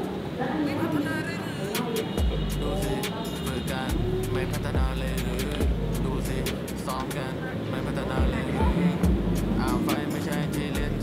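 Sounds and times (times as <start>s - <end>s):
music with thudding bass beat: 2.2s - 3.0s, 3.9s - 6.9s, 8.2s - 11.0s.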